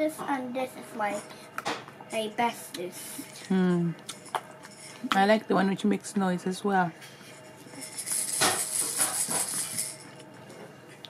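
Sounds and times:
rattle toy jingling: 7.7 - 10.1.

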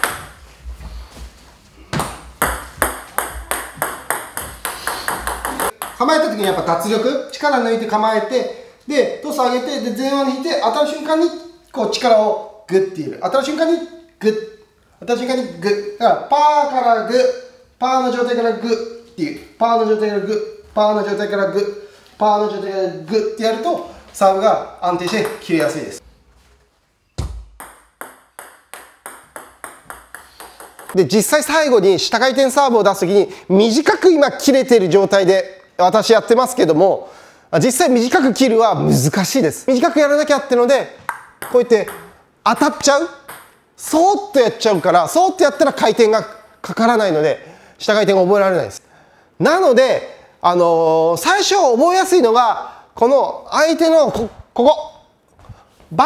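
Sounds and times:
table tennis ball bouncing: 0.0 - 0.4, 1.9 - 6.8, 25.0 - 26.0, 27.2 - 31.0, 41.0 - 43.8.

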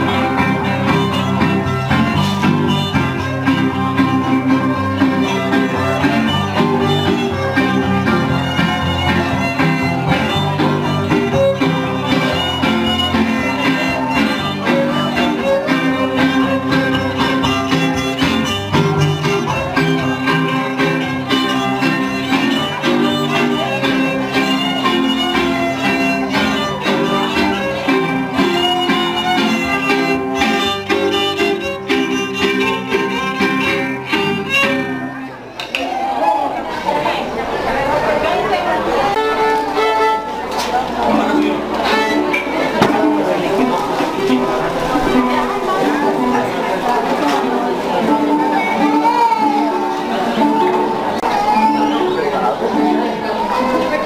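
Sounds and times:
violin melody: 0.0 - 35.6, 38.2 - 54.0
guitar accompaniment: 0.0 - 54.0.

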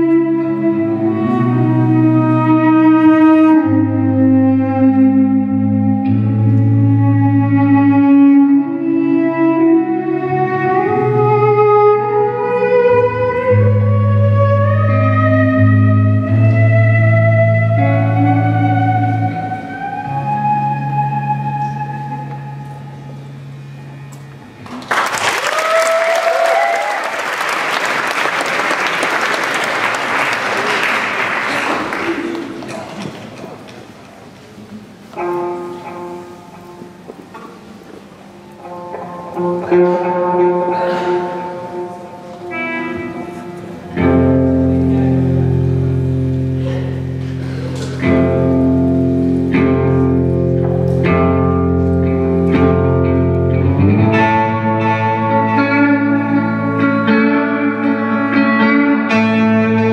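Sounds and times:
bowed cello sustained notes: 0.0 - 24.6, 38.3 - 59.9
distorted electric guitars: 0.0 - 24.8, 34.8 - 59.9.

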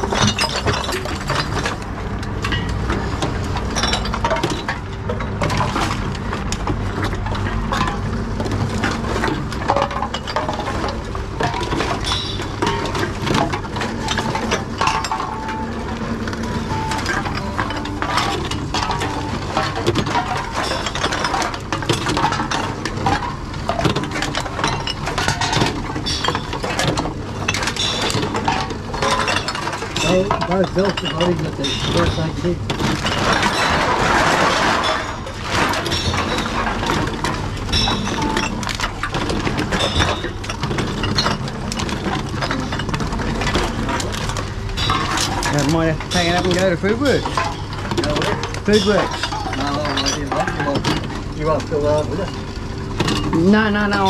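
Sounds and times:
cans and bottles clinking: 0.0 - 54.0.

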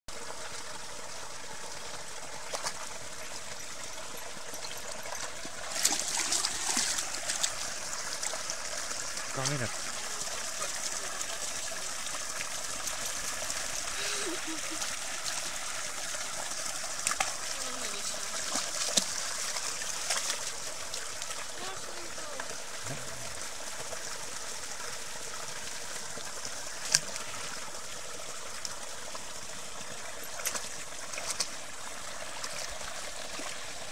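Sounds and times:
brook trickling over cascade: 0.1 - 33.9
dog splashing in water: 5.1 - 7.6.

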